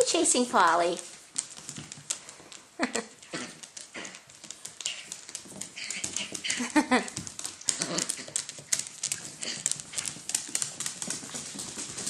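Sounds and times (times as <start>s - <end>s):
dog claws scrabbling on wood: 1.0s - 12.0s
woman laughing: 2.8s - 3.2s, 6.5s - 7.2s
small dogs vocalizing: 7.6s - 10.2s.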